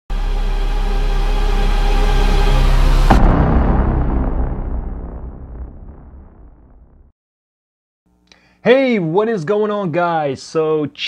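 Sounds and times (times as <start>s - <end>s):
synthesized bass drone: 0.1s - 7.1s.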